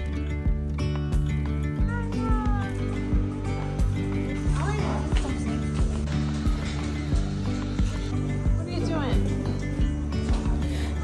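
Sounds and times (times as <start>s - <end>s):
background music with low beat: 0.0s - 11.0s.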